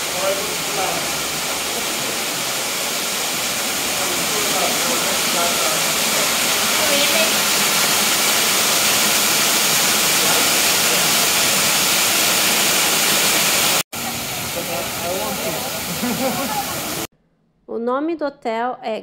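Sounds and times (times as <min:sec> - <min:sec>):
waterfall rushing: 0:00.0 - 0:17.1.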